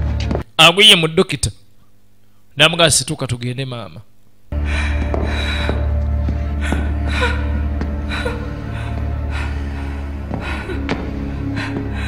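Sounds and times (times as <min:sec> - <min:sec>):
faint footsteps: 0:00.0 - 0:00.5, 0:04.6 - 0:12.0
low film score drone: 0:04.5 - 0:12.0
heavy gasping breaths: 0:04.6 - 0:12.0.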